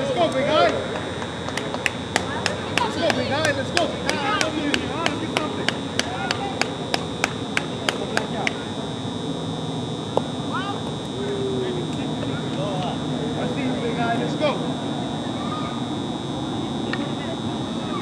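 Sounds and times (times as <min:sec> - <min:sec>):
faint voices: 0:00.0 - 0:18.0
high-pitched whine: 0:00.0 - 0:18.0
rapid hand-clapping: 0:00.2 - 0:08.7.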